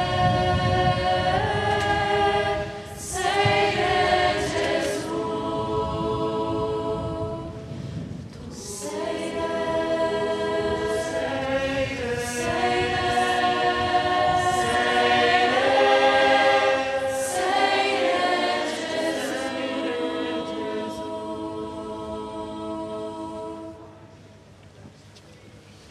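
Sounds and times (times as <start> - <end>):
choir singing a hymn: 0.0 - 24.4.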